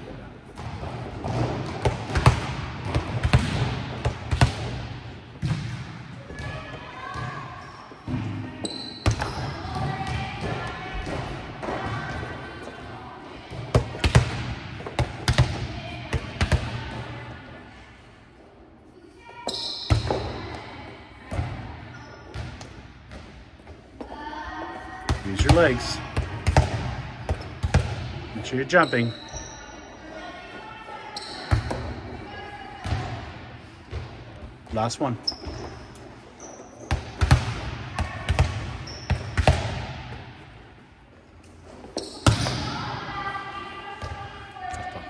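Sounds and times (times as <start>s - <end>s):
volleyballs hit and bouncing: 0.0s - 17.5s, 19.4s - 29.4s, 30.8s - 45.0s.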